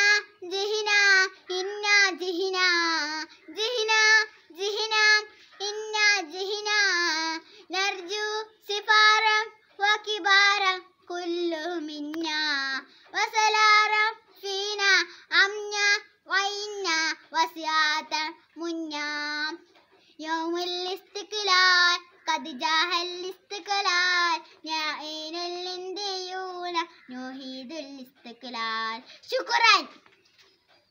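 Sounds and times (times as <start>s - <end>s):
girl singing unaccompanied: 0.0s - 30.0s.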